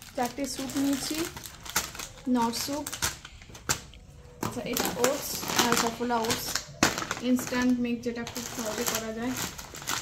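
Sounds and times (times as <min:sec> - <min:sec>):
plastic snack packets crinkling: 0:00.0 - 0:10.0
woman talking: 0:00.1 - 0:01.4, 0:02.2 - 0:03.0, 0:04.4 - 0:09.6.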